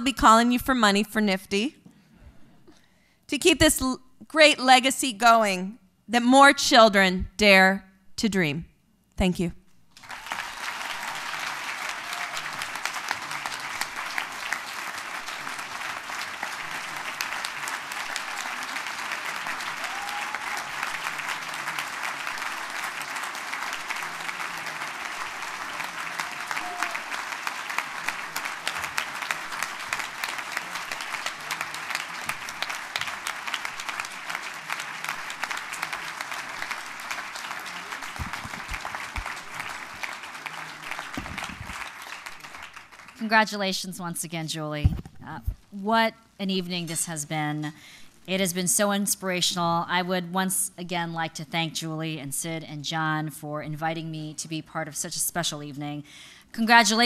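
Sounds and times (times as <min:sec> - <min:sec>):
audience applauding: 0:10.0 - 0:43.2.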